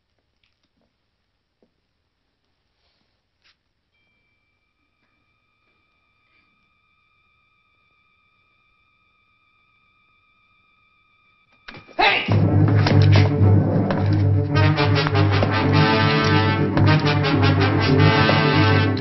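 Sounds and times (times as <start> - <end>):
faint high wavering tone: 3.8 - 12.0
sudden thump: 11.7 - 14.3
dramatic film score music: 11.8 - 19.0.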